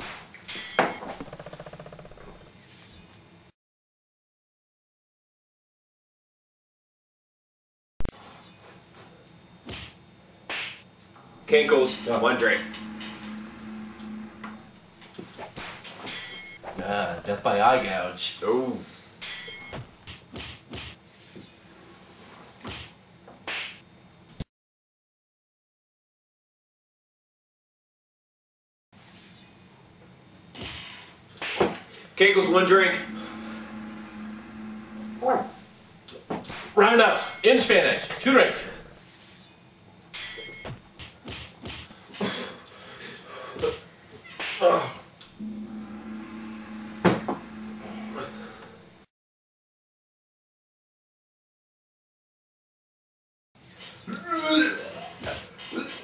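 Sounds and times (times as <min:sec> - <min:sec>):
low hum: 0:11.2 - 0:15.1, 0:32.4 - 0:36.0, 0:45.4 - 0:49.1.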